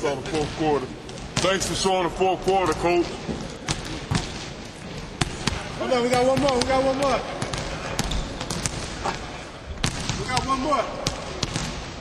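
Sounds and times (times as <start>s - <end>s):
basketballs bouncing on wooden floor: 0.2s - 9.1s, 9.7s - 12.0s.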